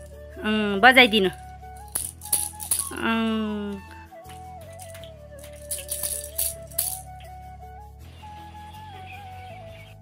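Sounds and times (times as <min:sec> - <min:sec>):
plastic baby rattle shaking: 0:01.8 - 0:03.1, 0:04.3 - 0:07.2.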